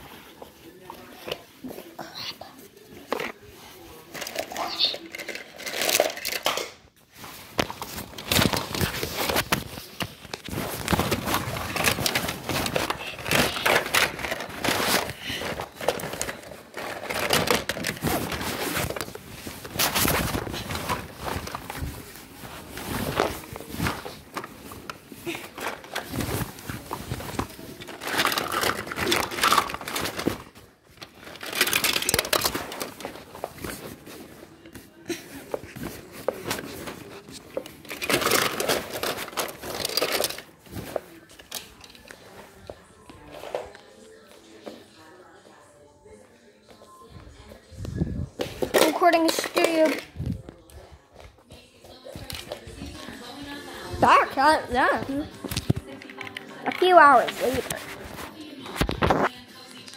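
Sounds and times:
rustling against phone microphone: 7.1s - 41.4s, 47.0s - 59.3s.

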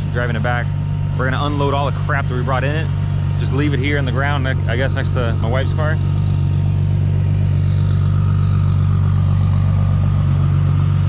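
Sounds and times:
car engine low drone: 0.0s - 11.0s.

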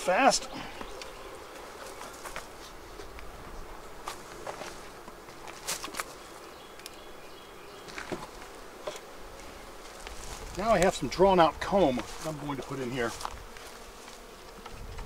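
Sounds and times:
honeybees buzzing: 0.0s - 15.0s
knocks of wooden hive boxes: 0.4s - 6.9s, 7.8s - 15.0s.

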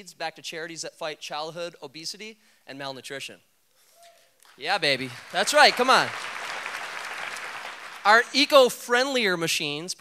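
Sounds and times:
audience applauding: 4.8s - 8.6s.

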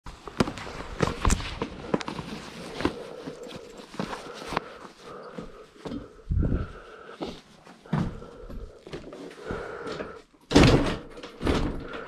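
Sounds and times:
rustling with sharp clicks: 0.1s - 5.2s.

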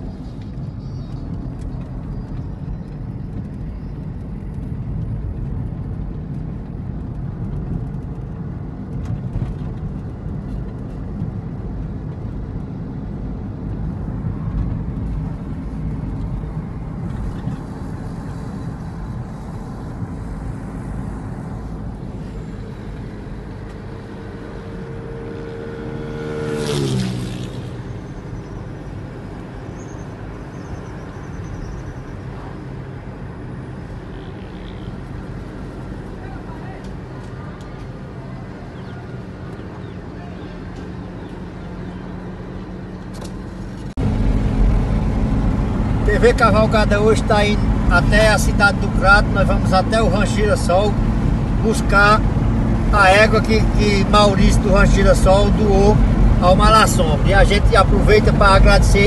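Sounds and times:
passing vehicle engine: 0.0s - 59.0s
road and engine noise inside car: 0.0s - 59.0s.

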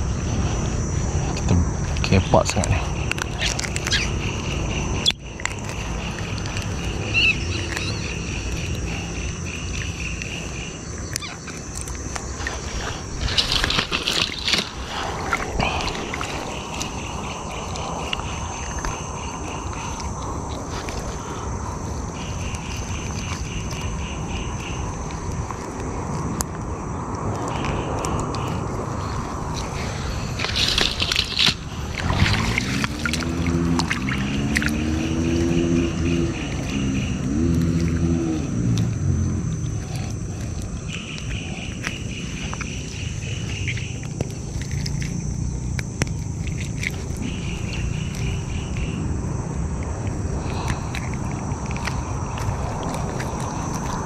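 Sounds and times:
steady low rumble: 0.0s - 54.0s
rustling and splashing: 2.9s - 26.6s, 28.8s - 54.0s
water sloshing: 3.0s - 26.3s, 28.9s - 38.7s, 39.6s - 54.0s.

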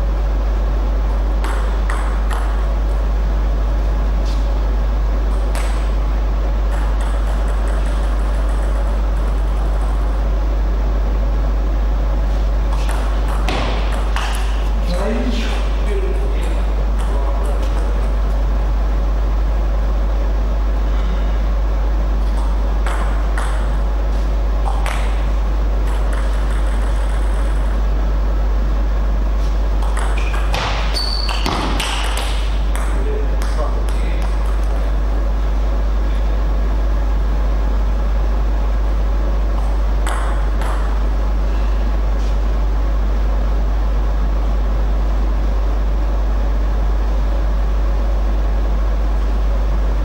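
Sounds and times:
low electrical hum: 0.0s - 50.0s
table tennis ball hits: 1.4s - 2.6s, 5.3s - 6.0s, 6.7s - 10.2s, 12.7s - 14.6s, 22.3s - 23.8s, 25.8s - 27.8s, 29.8s - 35.0s, 39.6s - 41.0s.

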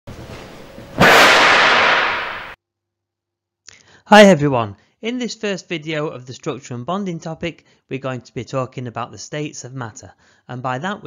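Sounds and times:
loud crack-like hit: 1.0s - 2.6s.

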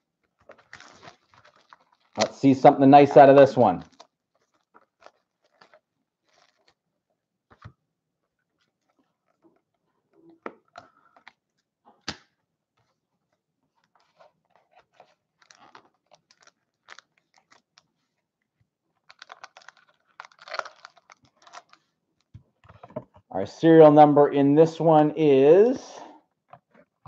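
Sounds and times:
foil pack crinkling: 0.2s - 6.8s, 12.8s - 18.2s, 18.9s - 22.3s.

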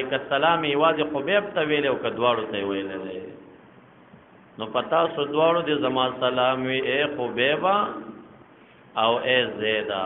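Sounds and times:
man speaking: 0.0s - 3.5s, 4.6s - 8.3s, 9.0s - 10.0s.

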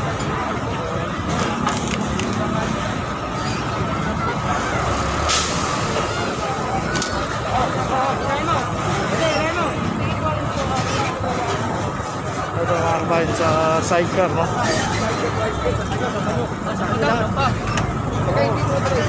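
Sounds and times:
people talking: 0.0s - 19.0s
steady traffic hum: 0.0s - 19.0s.

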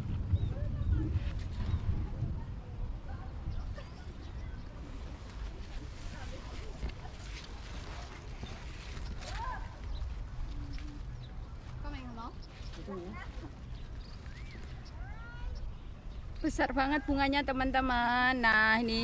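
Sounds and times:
wind rumble: 0.0s - 19.0s.

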